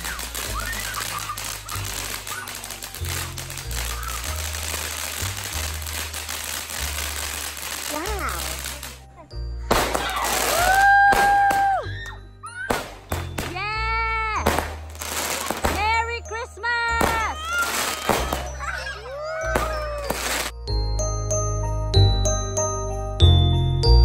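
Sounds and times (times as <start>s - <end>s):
fireworks crackling and popping: 0.0s - 9.1s, 9.7s - 13.8s, 14.4s - 20.6s.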